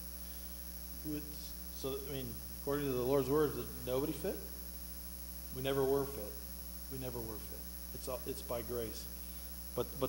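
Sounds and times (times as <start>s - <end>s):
low electrical mains hum: 0.0s - 10.0s.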